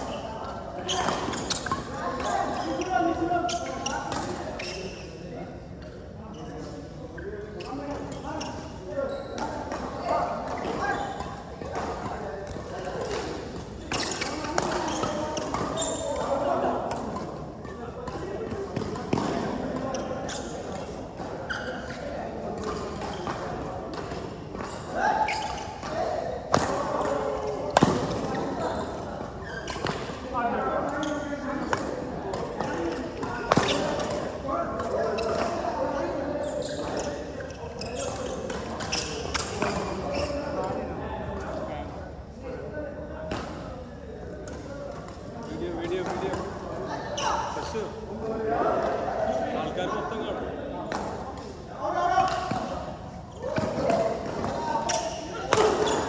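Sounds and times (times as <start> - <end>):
people talking: 0.0 - 56.0.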